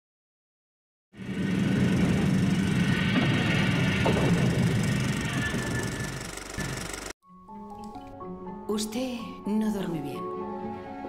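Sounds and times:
train rumbling on rails: 0:01.2 - 0:07.1.

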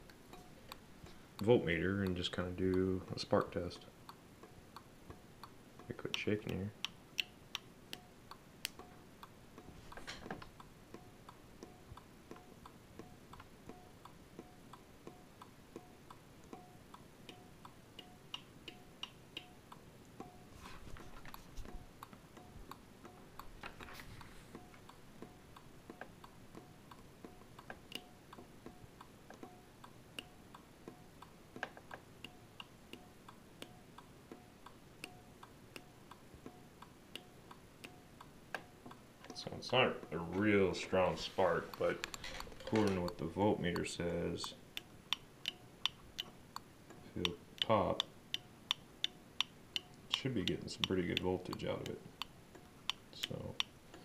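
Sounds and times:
fence energiser ticking: 0:24.5 - 0:54.0.

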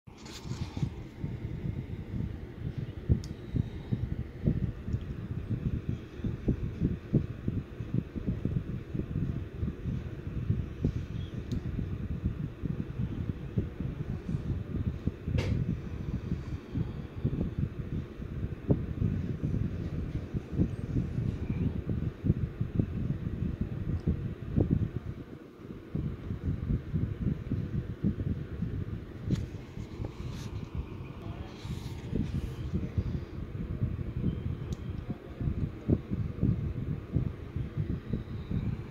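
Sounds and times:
low rumbling with small thumps: 0:00.1 - 0:38.9.

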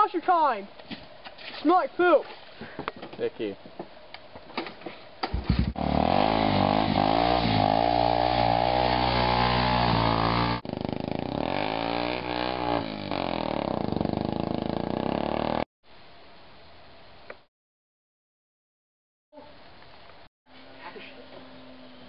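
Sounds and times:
quad bike engine revving: 0:05.3 - 0:15.7.

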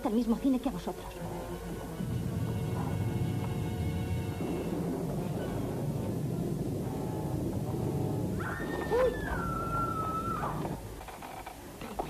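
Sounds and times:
low soundtrack rumble: 0:00.0 - 0:10.9
high howl-like cry: 0:08.4 - 0:10.8.

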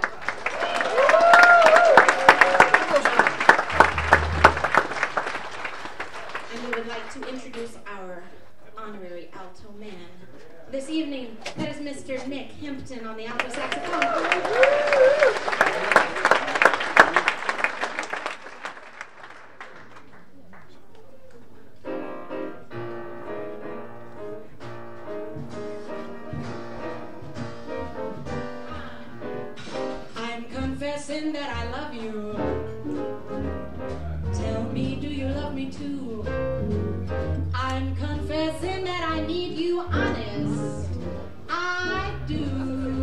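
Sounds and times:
audience applause: 0:00.0 - 0:07.7, 0:13.4 - 0:21.5
jazz band playing: 0:03.0 - 0:07.5, 0:21.8 - 0:43.0
jazz piano: 0:03.4 - 0:06.3, 0:21.7 - 0:43.0
walking bass line: 0:03.7 - 0:05.1, 0:31.6 - 0:43.0.

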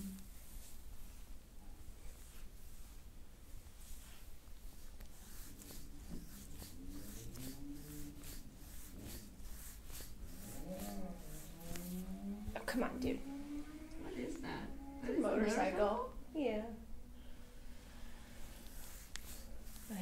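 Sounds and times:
faint motorcycle engine revving: 0:03.8 - 0:20.0.

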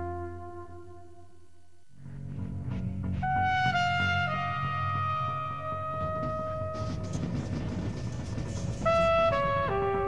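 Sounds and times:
flugelhorn playing: 0:00.0 - 0:01.3, 0:03.2 - 0:07.2, 0:08.8 - 0:10.0.

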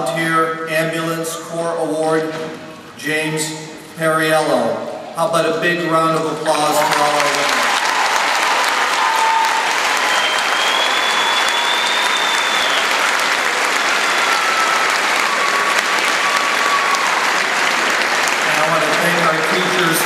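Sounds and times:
large audience applauding: 0:06.4 - 0:20.0.

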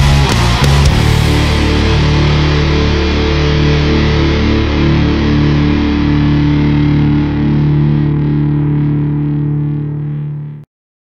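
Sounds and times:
distorted electric guitar chord: 0:00.0 - 0:10.7.

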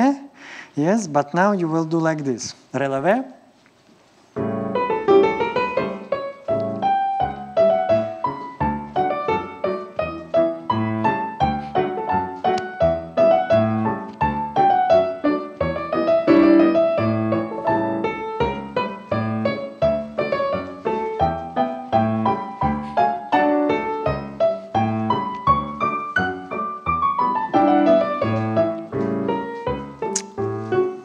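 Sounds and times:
piano music with steady beat: 0:04.4 - 0:31.0.

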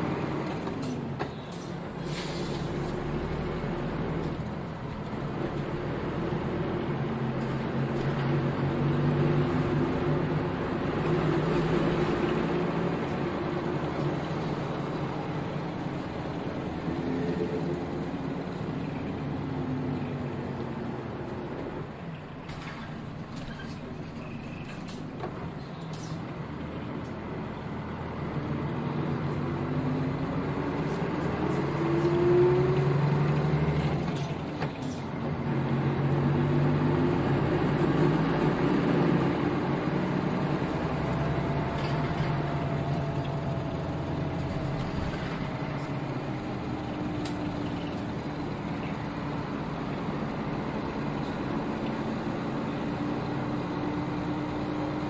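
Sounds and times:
bus diesel engine: 0:00.0 - 0:55.0.

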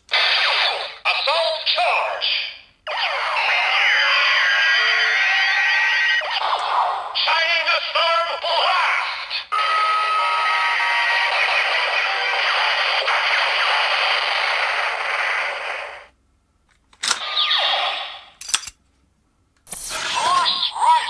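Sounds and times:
electronic firing blast: 0:10.4 - 0:16.1.

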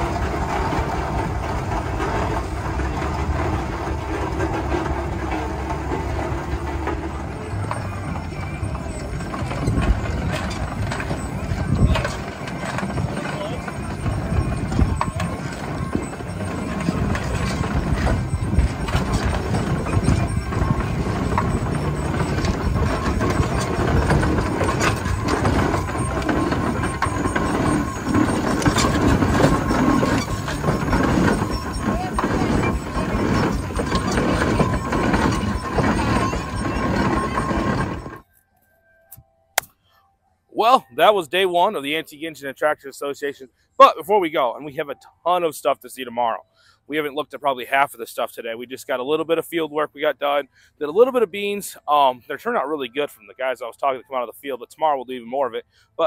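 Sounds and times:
steam engine knocking and clattering: 0:00.0 - 0:38.2
voices: 0:00.0 - 0:38.2, 0:40.5 - 0:55.6.

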